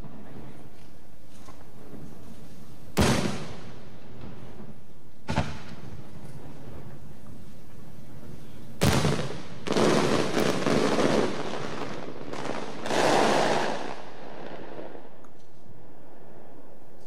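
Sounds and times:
fireworks crackling: 0.0 - 17.0
firework bang: 3.0 - 3.7, 5.2 - 5.9, 8.8 - 15.1.

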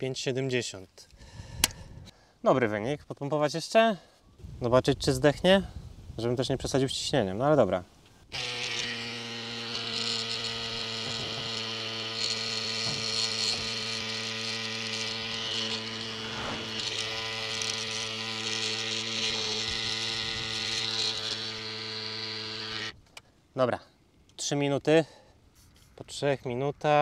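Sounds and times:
electric pump motor hum: 8.3 - 23.0.

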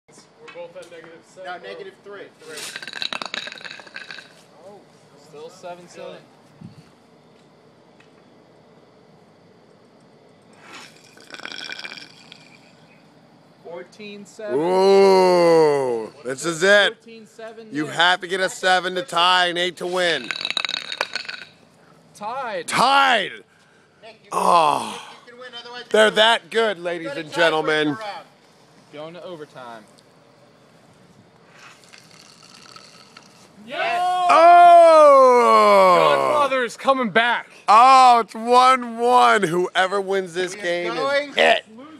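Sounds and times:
faint outdoor background hiss: 0.1 - 41.9
man yelling: 14.5 - 16.2, 33.6 - 36.7.

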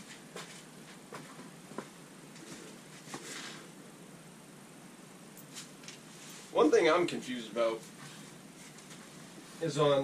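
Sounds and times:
soft rustle: 0.0 - 3.7, 5.4 - 6.7, 7.8 - 10.0.

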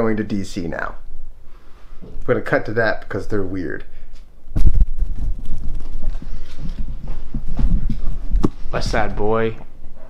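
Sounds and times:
footsteps: 4.1 - 10.0.

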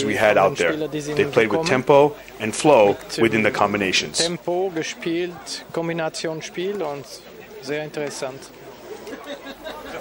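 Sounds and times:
man talking: 0.0 - 8.6
crowd chatter: 0.0 - 10.0.

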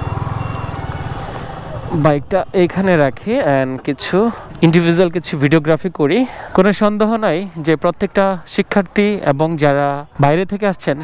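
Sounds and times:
motorcycle engine running: 0.0 - 3.3.

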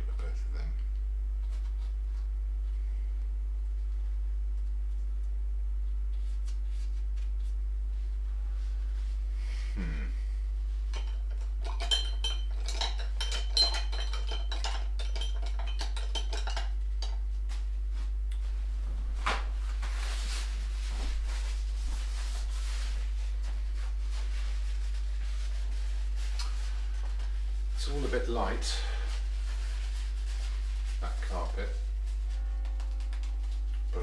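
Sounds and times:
low hum: 0.0 - 34.0
tools clinking against glass: 10.9 - 17.2
rustling: 18.6 - 27.9.

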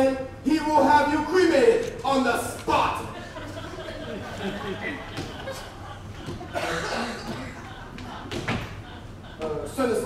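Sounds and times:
person coughing: 6.5 - 7.6.

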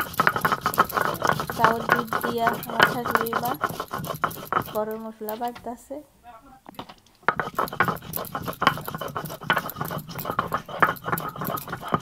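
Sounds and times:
stone roller grinding on stone slab: 0.0 - 5.7, 7.2 - 12.0.

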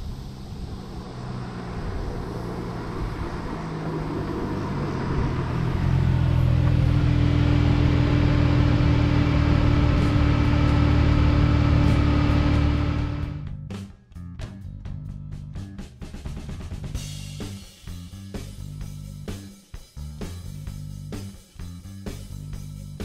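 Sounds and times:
car engine running: 0.0 - 13.6.

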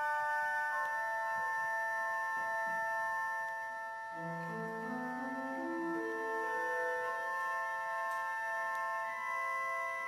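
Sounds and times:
organ playing sustained chords: 0.0 - 10.0.

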